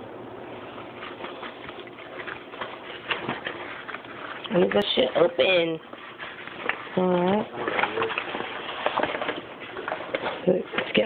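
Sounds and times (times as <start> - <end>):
plastic bag crinkling: 0.5 - 11.0.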